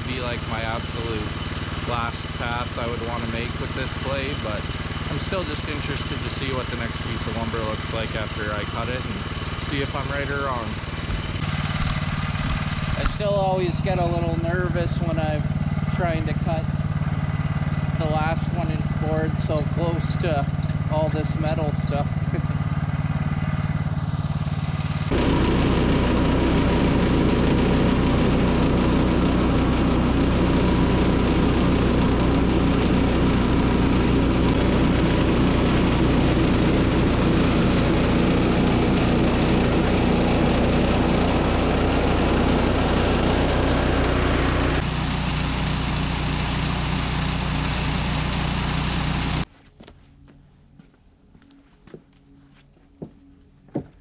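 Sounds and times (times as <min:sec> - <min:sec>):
gas engine running: 0:00.0 - 0:49.5
bandsaw blade sawing log: 0:25.0 - 0:49.4.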